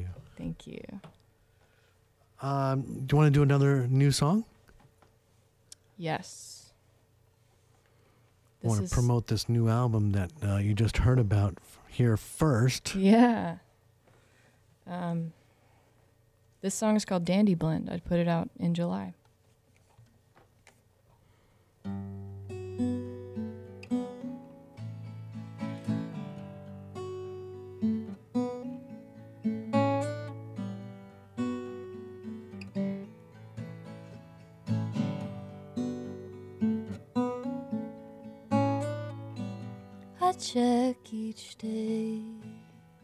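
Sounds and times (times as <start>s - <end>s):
solo acoustic guitar playing: 8.6s - 9.2s, 21.8s - 43.0s.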